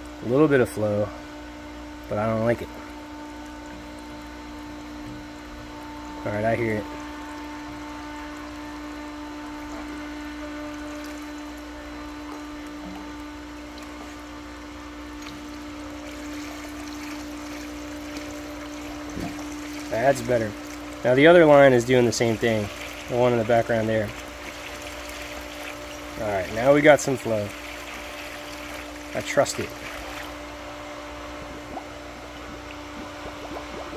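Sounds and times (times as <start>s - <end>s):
pump motor humming: 0.0s - 33.9s
water pouring and trickling: 2.6s - 30.4s.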